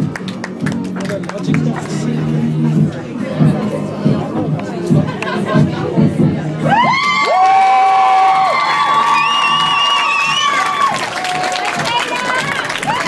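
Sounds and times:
high-pitched screams: 6.7 - 11.0
audience cheering: 6.7 - 13.0.

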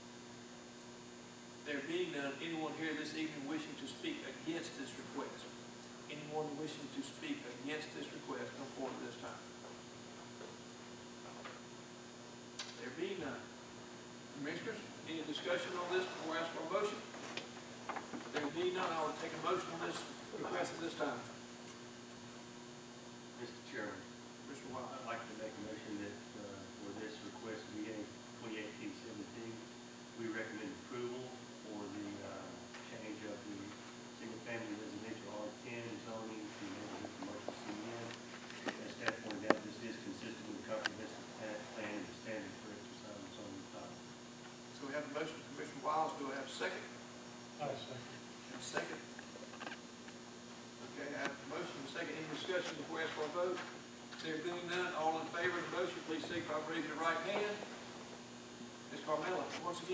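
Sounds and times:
electrical hum: 0.0 - 59.9
faint small noises: 0.3 - 59.9
man speaking: 1.7 - 5.5, 6.1 - 9.5, 14.4 - 17.1, 18.4 - 21.3, 23.4 - 38.1, 38.7 - 44.0, 44.8 - 47.0, 50.8 - 57.8, 58.9 - 59.9.

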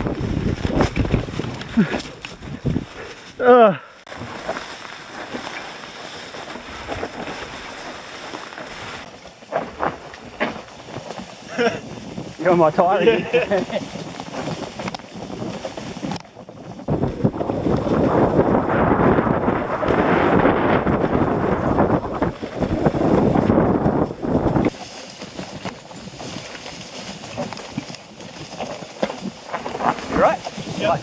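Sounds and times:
wind buffeting microphone: 0.0 - 3.3, 11.4 - 26.5
bike trail rumble: 0.0 - 31.0.

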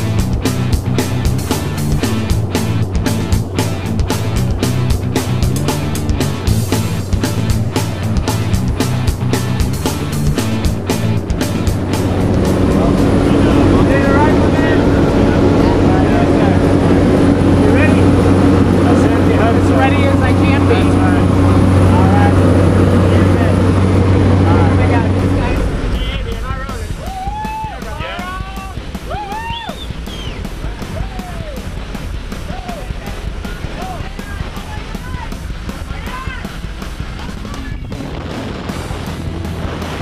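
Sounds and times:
rising and falling tones: 0.0 - 35.9
airplane engine and propeller drone: 0.0 - 40.0
music: 0.0 - 40.0.

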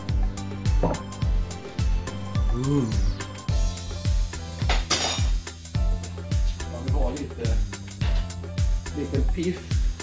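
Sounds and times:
music with kick-drum beat: 0.0 - 10.0.

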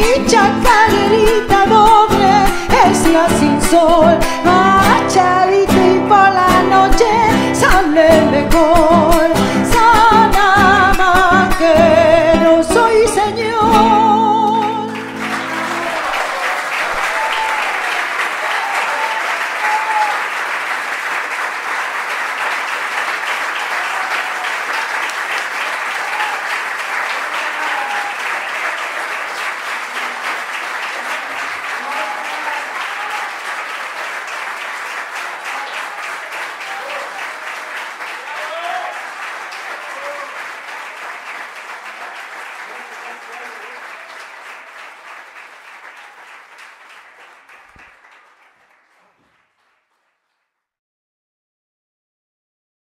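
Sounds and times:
audience applauding: 0.0 - 50.6
shouts in the crowd: 15.4 - 20.4, 23.6 - 29.2, 31.0 - 33.7, 35.2 - 40.5.

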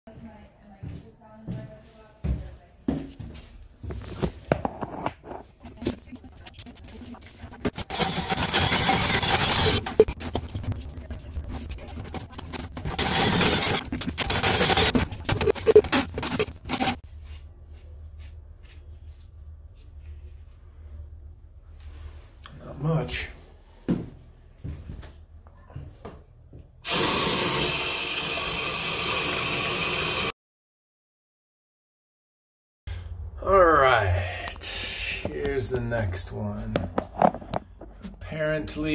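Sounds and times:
cordless drill spinning auger: 7.6 - 10.5, 11.9 - 17.0, 26.8 - 30.3.

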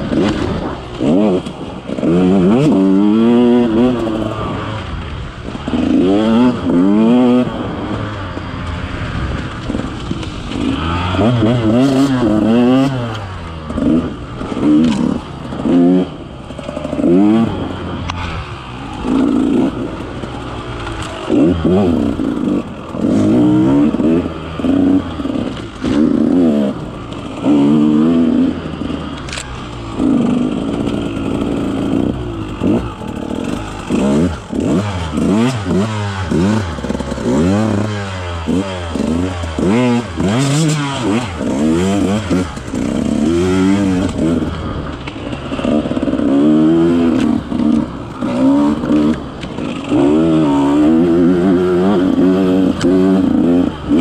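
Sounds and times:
two-stroke engine revving: 0.0 - 54.0.

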